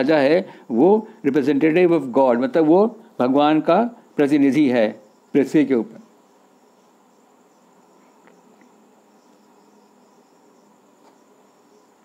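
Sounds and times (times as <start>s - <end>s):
high-pitched insect chirring: 3.5s - 12.0s.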